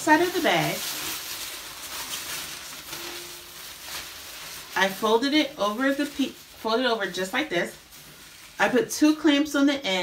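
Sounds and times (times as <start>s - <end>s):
plastic tablecloth rustling: 0.0s - 9.7s.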